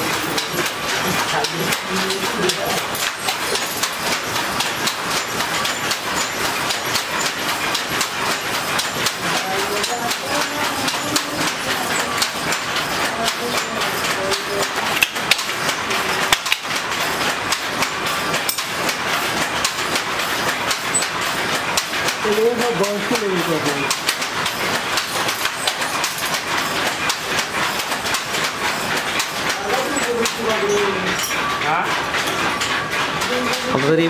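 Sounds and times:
wooden hand looms clattering: 0.0s - 34.0s.

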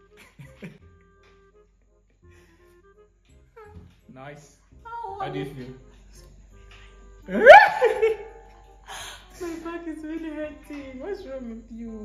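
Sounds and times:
faint background music: 0.0s - 12.0s
woman's wavering whining cries: 7.3s - 8.4s.

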